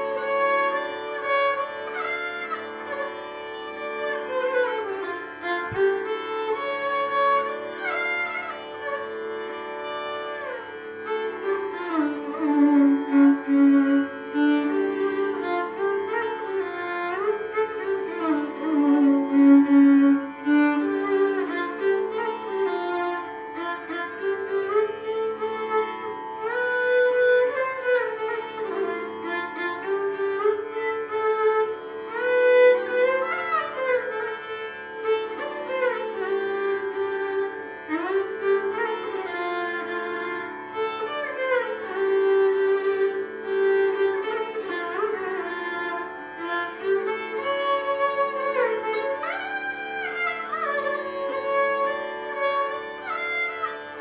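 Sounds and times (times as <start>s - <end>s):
bowed violin melody: 0.0s - 54.0s.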